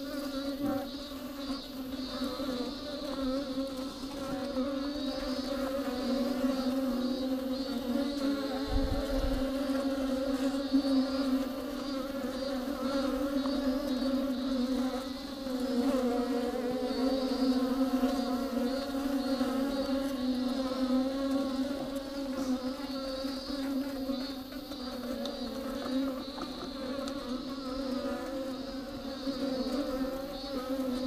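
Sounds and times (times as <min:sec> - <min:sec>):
honeybees buzzing: 0:00.0 - 0:31.0.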